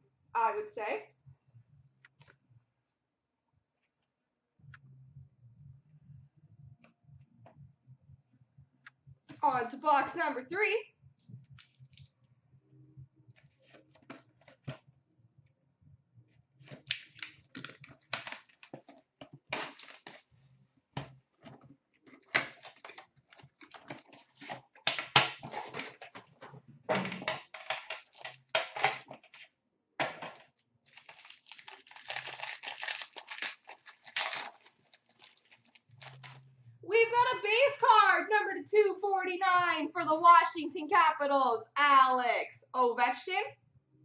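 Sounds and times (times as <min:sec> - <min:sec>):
cardboard and wrapping tearing: 0:16.8 - 0:20.4, 0:25.4 - 0:26.1, 0:27.9 - 0:28.5, 0:30.9 - 0:36.4.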